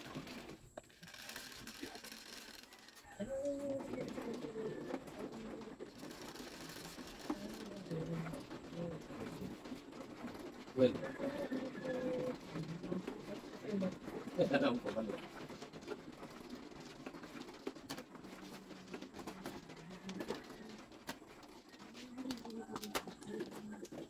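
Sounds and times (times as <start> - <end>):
quiet voices: 1.0 - 15.6, 18.2 - 24.0
soft low cooing calls: 2.2 - 5.9, 10.9 - 14.0.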